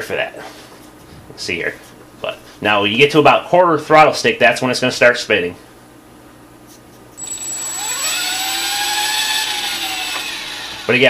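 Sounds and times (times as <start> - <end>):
electric motor whine rising: 7.2 - 11.0.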